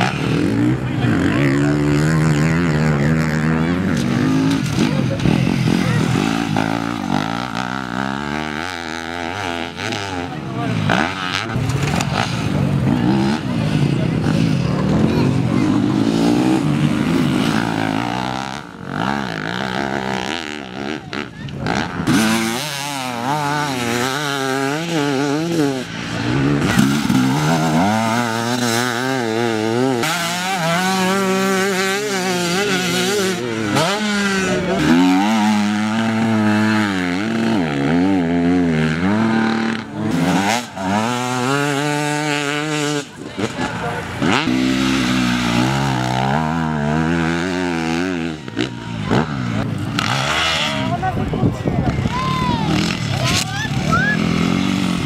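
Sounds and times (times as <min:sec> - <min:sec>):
motorcycles revving hard: 0:00.0 - 0:55.0.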